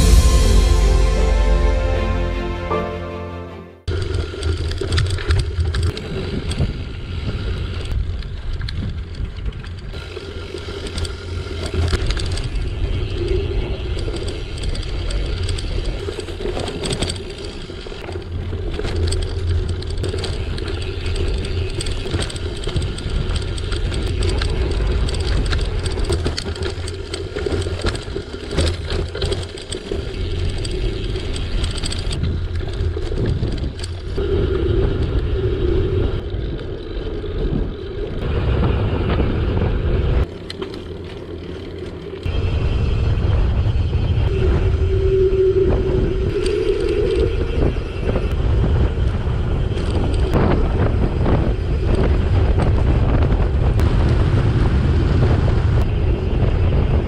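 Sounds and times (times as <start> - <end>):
bicycle tyre noise: 3.9 - 57.0
wind rushing over microphone: 30.1 - 40.4, 42.2 - 57.0.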